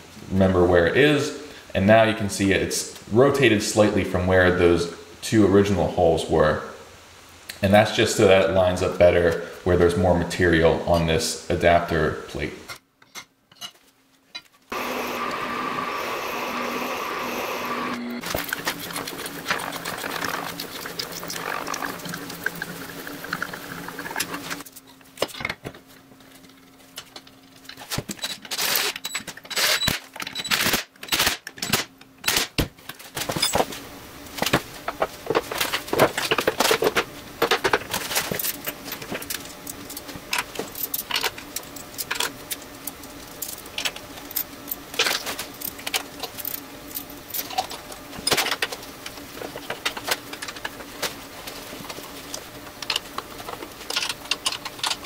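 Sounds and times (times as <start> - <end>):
steady whirring hum: 14.4 - 55.0.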